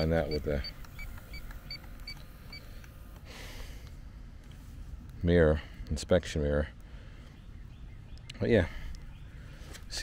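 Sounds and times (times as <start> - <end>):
leak detector beeping: 0.0 - 3.2.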